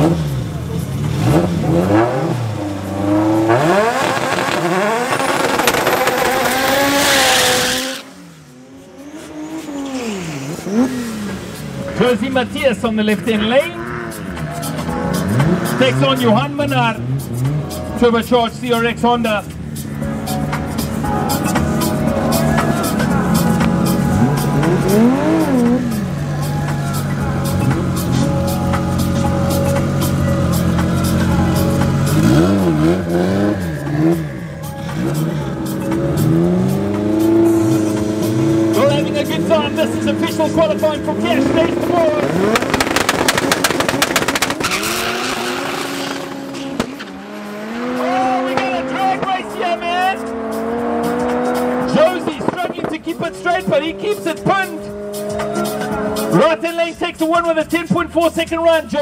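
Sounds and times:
cars accelerating through gear changes: 0.0 - 18.1, 19.4 - 56.6
race car engines revving: 0.0 - 59.0.

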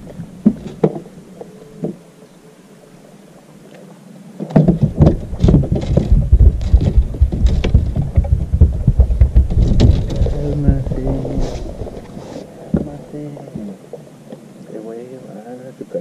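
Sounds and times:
close knocks and thumps: 0.0 - 1.1, 4.4 - 12.1, 12.7 - 13.7
muffled voices: 10.1 - 14.0, 14.6 - 16.0.

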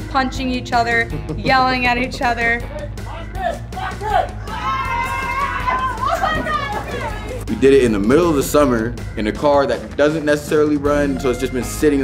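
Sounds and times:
heavy metal music: 0.2 - 12.0
people yelling and chanting: 2.7 - 7.5
long high yell: 3.8 - 6.8.

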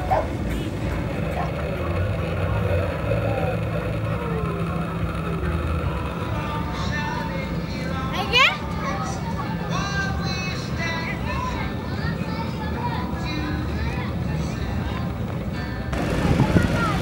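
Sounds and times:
faint voices: 0.0 - 17.0
low motor drone: 0.0 - 17.0.

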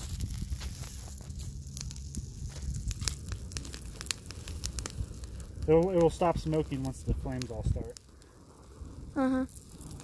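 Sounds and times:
bonfire crackling and popping: 0.0 - 10.0
low rumble of flame: 0.0 - 10.0.

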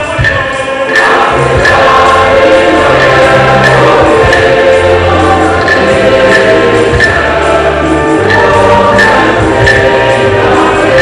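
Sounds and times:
choir singing a hymn: 0.0 - 11.0
held bass notes: 0.0 - 11.0
instrumental accompaniment: 0.0 - 11.0.

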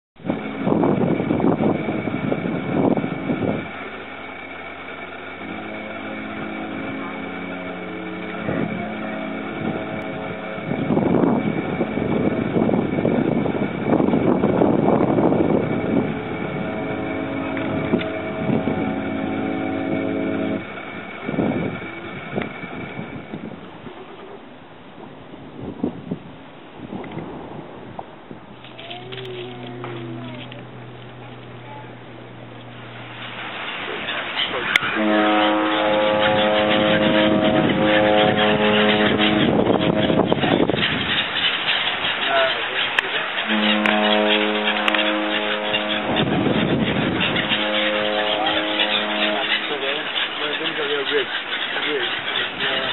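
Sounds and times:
ship's horn blast: 0.2 - 23.9, 28.4 - 52.9
steady mechanical hum: 0.2 - 52.9
wind buffeting microphone: 0.2 - 52.9.

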